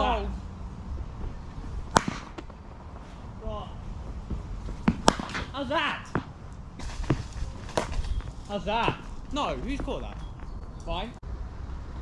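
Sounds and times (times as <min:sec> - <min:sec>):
cricket bat hitting ball: 0:01.9 - 0:02.6, 0:04.8 - 0:06.4, 0:07.0 - 0:08.1.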